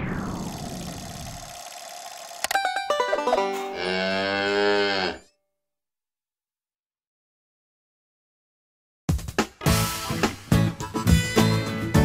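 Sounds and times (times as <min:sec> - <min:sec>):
cow mooing: 0:03.7 - 0:05.4.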